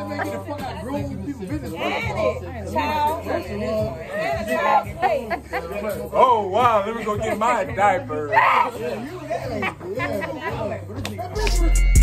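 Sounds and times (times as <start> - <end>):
people laughing: 0.0 - 2.4, 4.1 - 11.8
voices talking over one another: 0.0 - 12.0.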